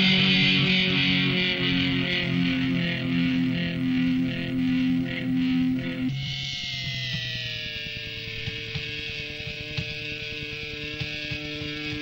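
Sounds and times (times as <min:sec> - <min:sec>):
distorted electric guitar chord: 0:00.0 - 0:12.0
guitar tone sliding down: 0:00.0 - 0:12.0
low amplifier hum: 0:00.0 - 0:12.0.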